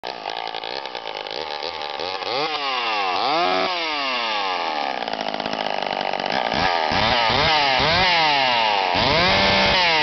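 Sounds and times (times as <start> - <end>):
chainsaw idling: 0.0 - 10.0.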